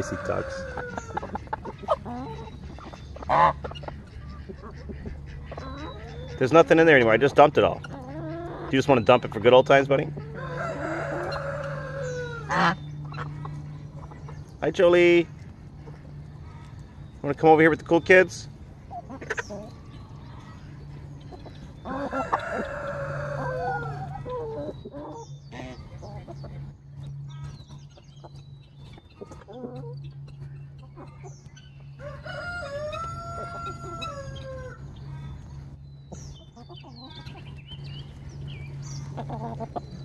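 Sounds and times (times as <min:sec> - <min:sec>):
rooster crowing: 0:00.0 - 0:01.2, 0:10.3 - 0:12.7, 0:21.9 - 0:24.6, 0:32.0 - 0:34.9
hens clucking: 0:00.0 - 0:40.0
steady low hum: 0:00.0 - 0:40.0.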